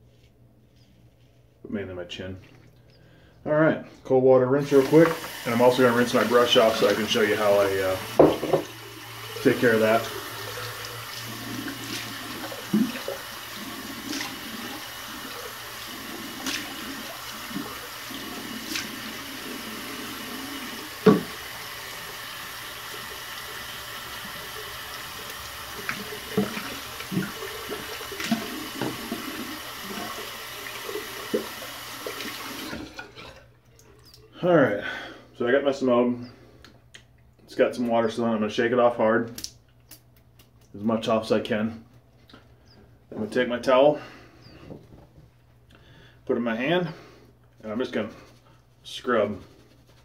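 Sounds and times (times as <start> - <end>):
tap water running into sink: 4.6 - 33.4
water splashes and knocks: 8.0 - 8.8, 11.2 - 13.3, 21.0 - 21.4, 25.8 - 33.4.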